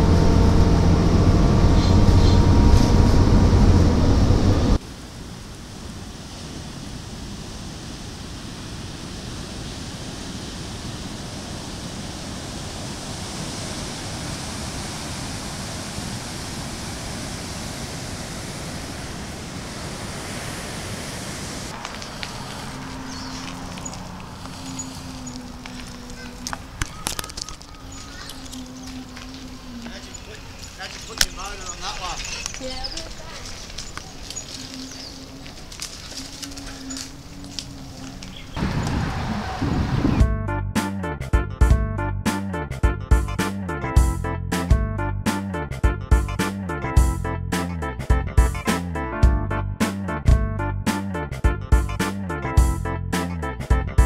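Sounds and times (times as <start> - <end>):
low tone: 0.0 - 4.8, 40.2 - 54.0
wind: 0.0 - 54.0
ocean surf: 2.9 - 40.1.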